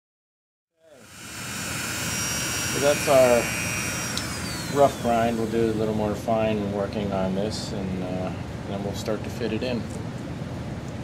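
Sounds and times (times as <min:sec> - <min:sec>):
rotary tool high whine: 0:00.8 - 0:06.4
exhaust fan running: 0:00.8 - 0:11.0.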